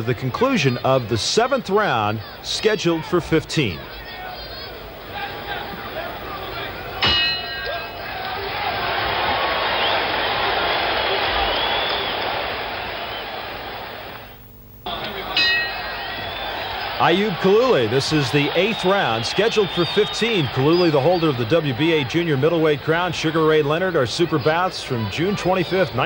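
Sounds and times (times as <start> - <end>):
crowd noise: 0.0 - 26.0
boxing ring bell: 7.0 - 7.9, 14.9 - 17.0.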